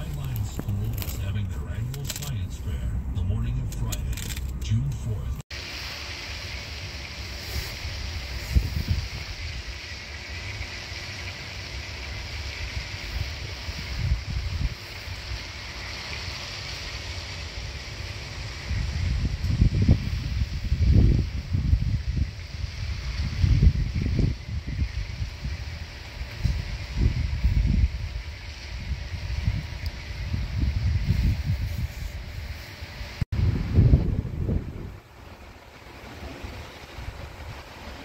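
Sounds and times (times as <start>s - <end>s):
steady high hiss: 0.0s - 38.0s
wind buffeting microphone: 7.7s - 10.7s, 11.4s - 16.5s, 17.3s - 38.0s.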